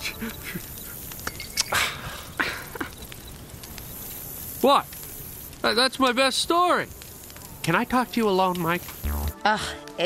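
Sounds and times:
campfire crackling: 0.0 - 10.0.

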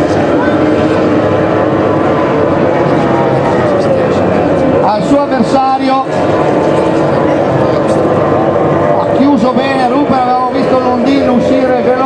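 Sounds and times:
outboard engine whining: 0.0 - 12.0.

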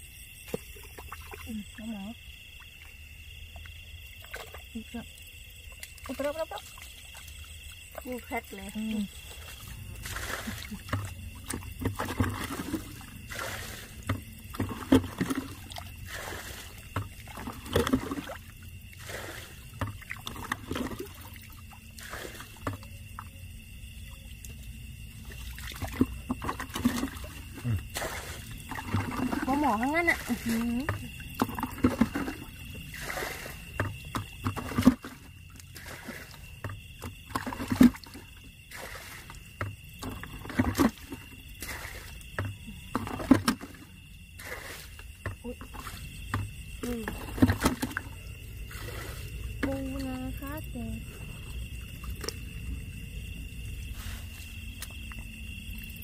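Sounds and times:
hands splashing in muddy water: 9.2 - 22.9, 25.3 - 49.7.

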